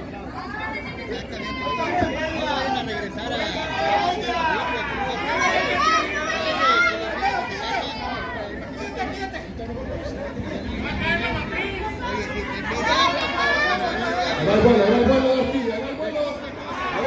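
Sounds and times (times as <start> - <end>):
people talking and calling out: 0.0 - 17.0.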